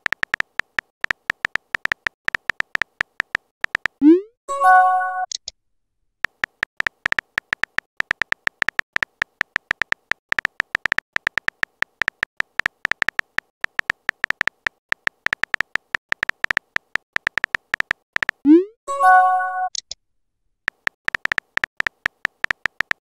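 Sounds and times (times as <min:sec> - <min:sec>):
smartphone keyboard clicks: 0:00.0 - 0:04.0, 0:06.2 - 0:18.4, 0:20.7 - 0:23.0.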